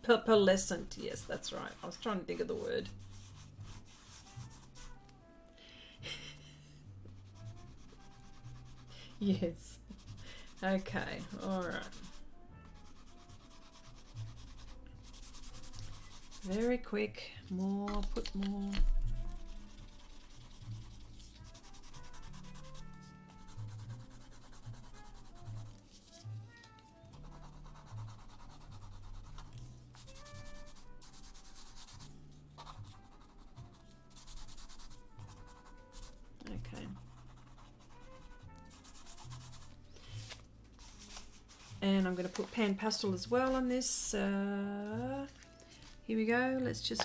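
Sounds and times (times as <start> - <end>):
pastel scratching on paper: 0.7 - 5.0, 7.1 - 16.9, 18.8 - 26.4, 27.1 - 43.7.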